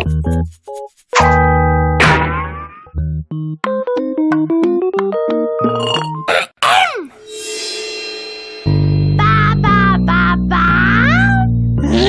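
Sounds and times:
plinked keyboard notes: 1.2 - 6.3.

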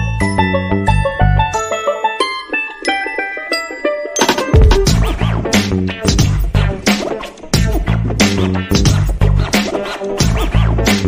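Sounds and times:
plucked melody: 0.2 - 6.3.

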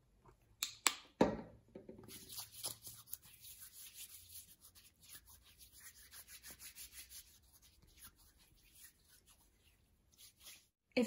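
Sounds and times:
hands rubbing together: 2.1 - 10.8.

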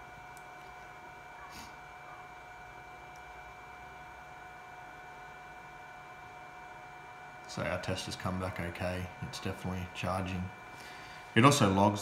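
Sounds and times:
battery charger whine: 0.0 - 12.0.

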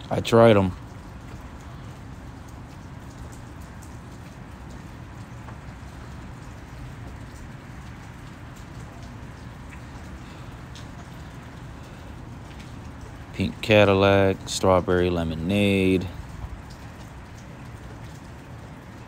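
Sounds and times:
aquarium water trickling: 0.0 - 19.0.

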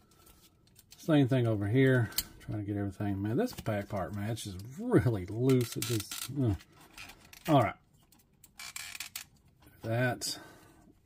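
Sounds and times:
plastic toy parts scraping: 5.3 - 9.4.

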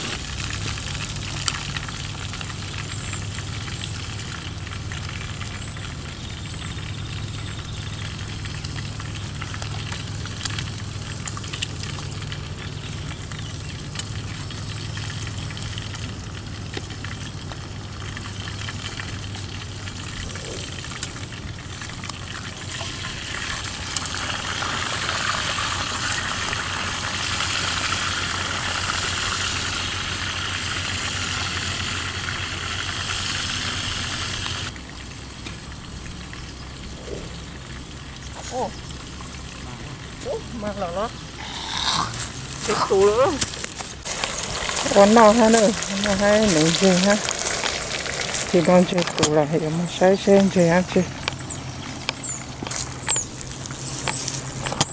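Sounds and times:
food sizzling in a pot: 21.6 - 34.7, 41.4 - 49.2.

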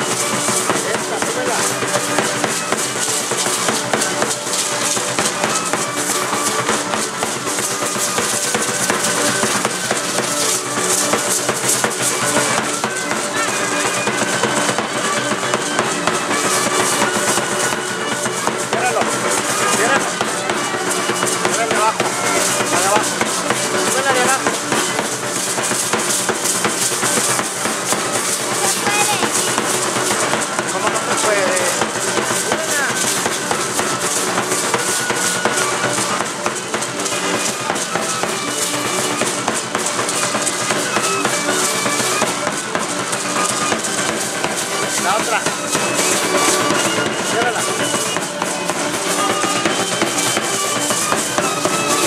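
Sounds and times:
drum beating: 0.0 - 52.0
hand rattles shaking: 0.0 - 52.0
stamping footwork: 0.0 - 52.0.

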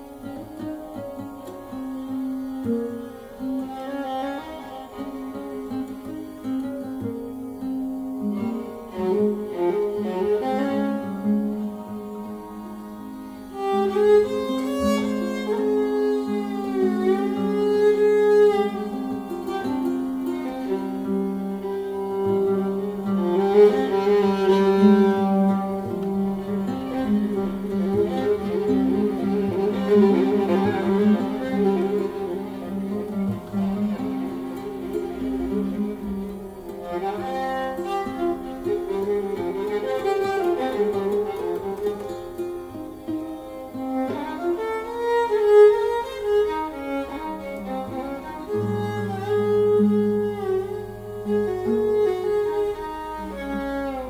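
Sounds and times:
plucked oud: 0.0 - 54.0
viola bowed notes: 0.0 - 54.0.

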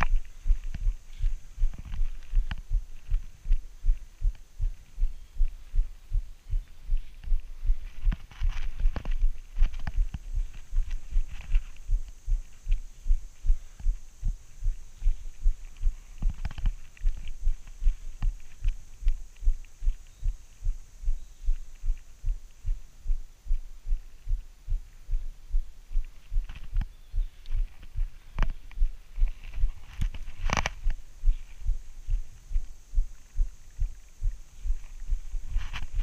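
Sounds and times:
low thumps of bike on trail: 0.0 - 36.0.

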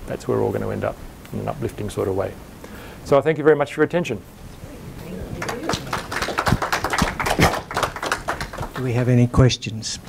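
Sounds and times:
audience applauding: 4.7 - 9.2.

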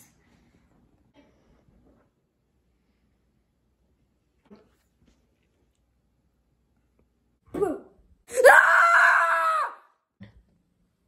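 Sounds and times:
girl screaming: 7.7 - 10.0.

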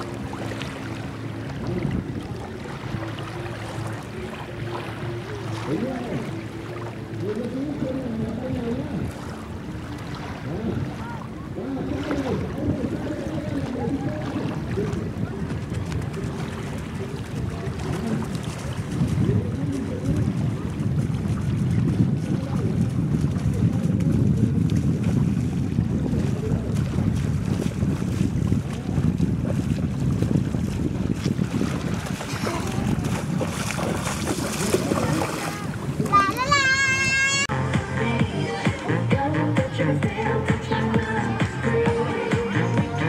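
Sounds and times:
wind buffeting microphone: 0.0 - 6.4, 7.2 - 43.0
small waves in shallow water: 0.0 - 43.0.

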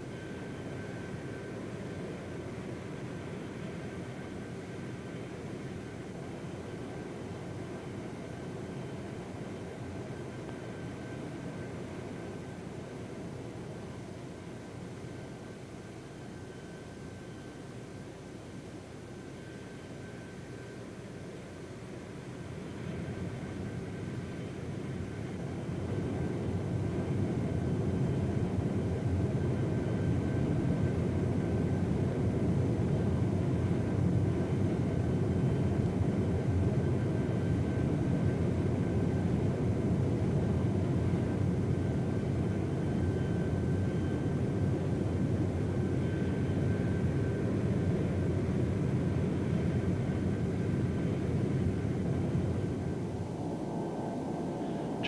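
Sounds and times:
faint high whine: 0.0 - 55.0
jet engine rumble: 21.9 - 55.0.

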